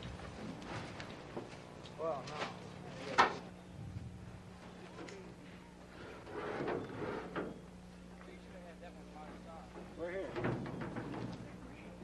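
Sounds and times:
faint indistinct voices: 4.6s - 12.0s
canoe scraping on concrete: 5.9s - 7.4s.

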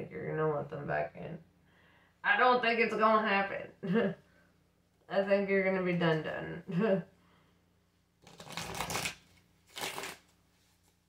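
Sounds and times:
cards shuffled by hand: 8.2s - 11.0s.

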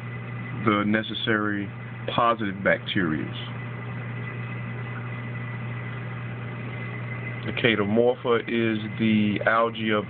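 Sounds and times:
faint high whine: 0.0s - 10.0s
low electrical hum: 0.0s - 10.0s.

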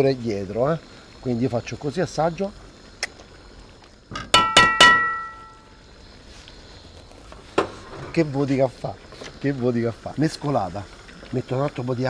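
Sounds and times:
utensil clanging on metal pan: 4.1s - 5.6s.

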